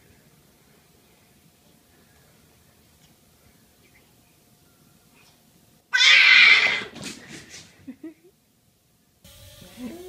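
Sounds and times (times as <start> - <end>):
cat crying: 5.9 - 7.0.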